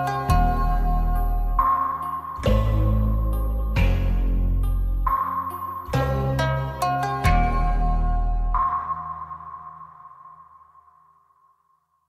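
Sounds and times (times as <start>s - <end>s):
background song bass and chords: 0.0s - 10.0s.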